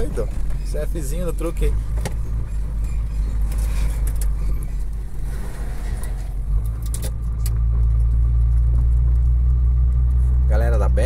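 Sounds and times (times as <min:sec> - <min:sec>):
truck engine droning: 0:00.0 - 0:11.0.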